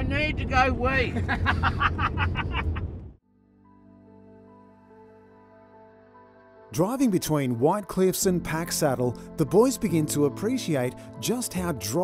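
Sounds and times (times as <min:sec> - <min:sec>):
engine and road rumble: 0:00.0 - 0:03.2
men laughing: 0:01.1 - 0:03.0.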